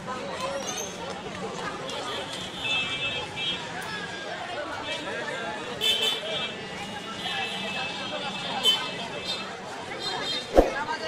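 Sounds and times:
traffic passing: 10.4 - 11.0.

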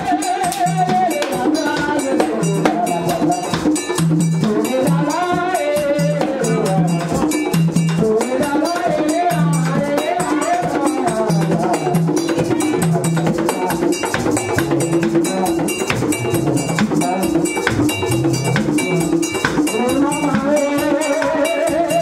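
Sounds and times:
hand drums beaten: 0.0 - 22.0
voices singing: 0.0 - 22.0
metal bell struck: 10.4 - 22.0.

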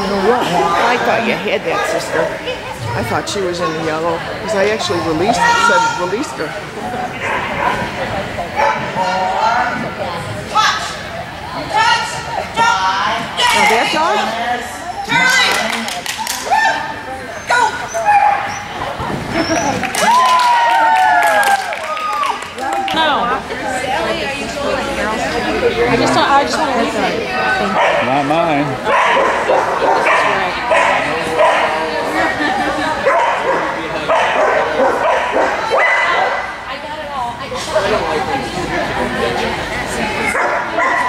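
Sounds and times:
people's voices: 0.0 - 41.0
dog barking: 8.6 - 8.9, 27.8 - 28.1, 28.9 - 31.7, 33.0 - 36.5, 40.3 - 41.0.

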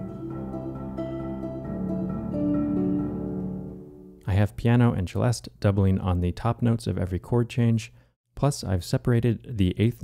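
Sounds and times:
harp accompaniment: 0.0 - 4.2
marimba chords: 0.0 - 4.2.

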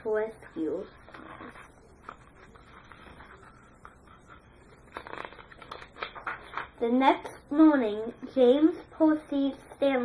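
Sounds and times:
paper pages rustling: 1.0 - 6.8
paper crackles and clicks: 4.8 - 6.7.

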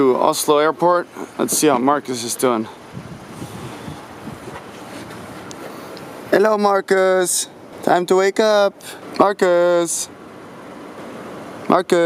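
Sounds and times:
wind buffeting microphone: 1.2 - 6.4.

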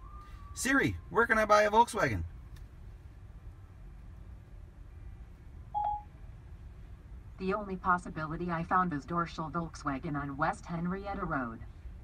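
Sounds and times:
low room rumble: 1.0 - 12.0
short electronic beep: 5.8 - 6.1.

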